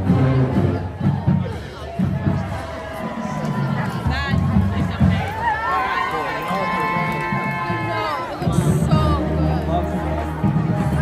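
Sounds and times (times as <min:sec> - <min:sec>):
band playing: 0:00.0 - 0:11.0
crowd rumble: 0:00.0 - 0:11.0.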